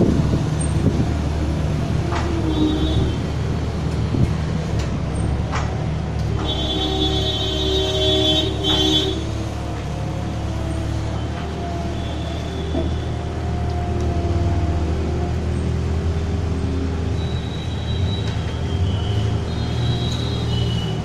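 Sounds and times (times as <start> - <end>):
diesel engine under load: 0.0 - 21.0.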